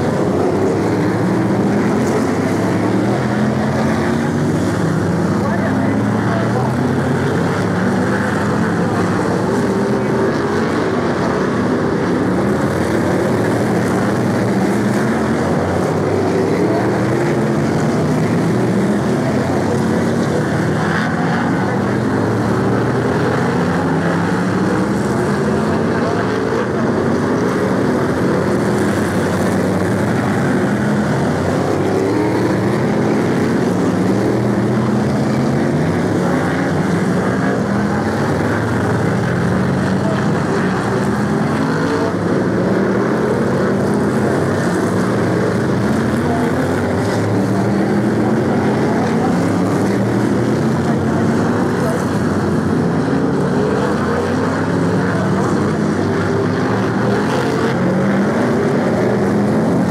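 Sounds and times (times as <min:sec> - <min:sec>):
racing car engines revving: 0:00.0 - 0:59.9.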